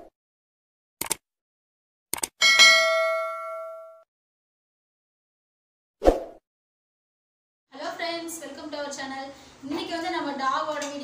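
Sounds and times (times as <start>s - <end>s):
notification bell ding: 2.4s - 4.0s.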